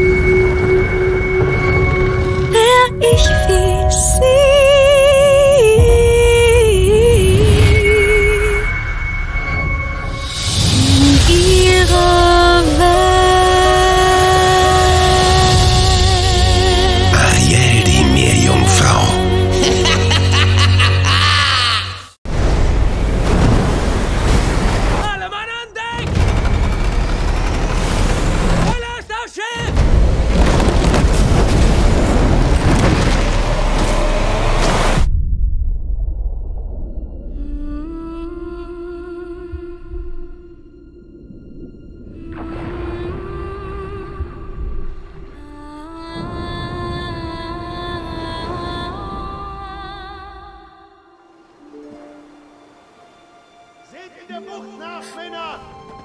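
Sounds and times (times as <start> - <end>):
orchestral trailer music: 0.0 - 29.0, 29.6 - 50.2, 51.2 - 56.0
person speaking: 17.1 - 21.3, 54.0 - 55.7
voice singing a held note: 17.2 - 19.6
rain: 22.3 - 25.1, 29.9 - 35.0
sea: 22.3 - 25.2, 29.8 - 53.4
deep bass rumble: 34.9 - 45.1.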